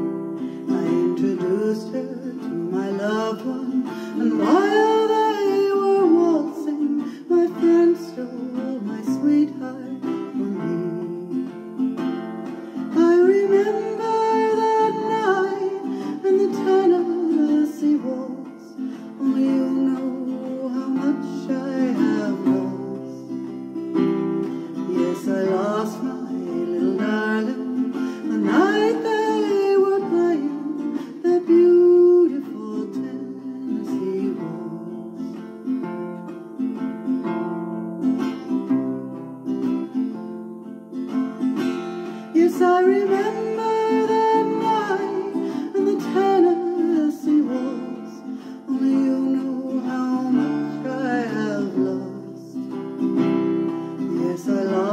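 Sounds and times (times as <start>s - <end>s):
woman singing: 0.0s - 35.9s, 42.0s - 54.9s
acoustic guitar strumming: 0.0s - 54.9s.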